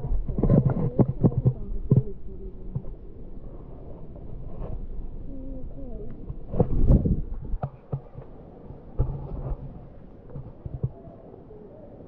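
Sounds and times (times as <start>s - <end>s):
low thumps on microphone: 6.2s - 8.3s, 8.9s - 11.0s.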